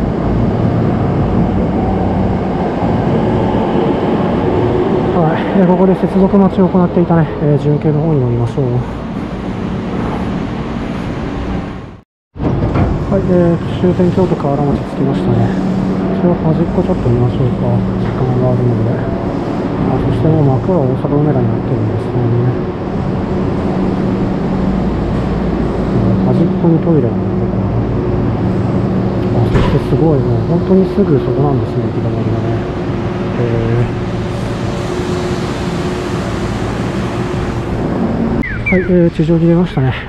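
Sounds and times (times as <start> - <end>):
train equipment humming: 0.0 - 40.0.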